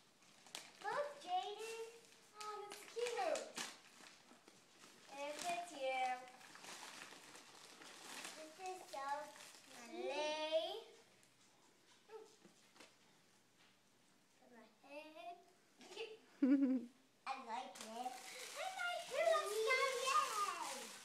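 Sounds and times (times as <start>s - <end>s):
gift wrapping crinkling: 0.0s - 10.4s, 17.6s - 21.0s.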